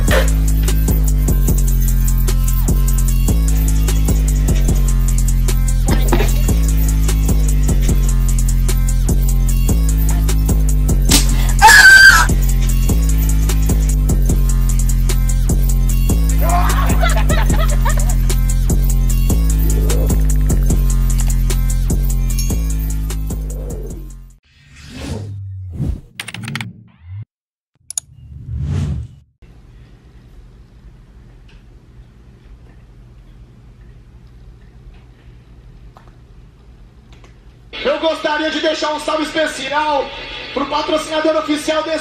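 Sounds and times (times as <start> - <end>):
music with heavy bass beat: 0.0 - 24.2
loud high scream: 11.5 - 12.3.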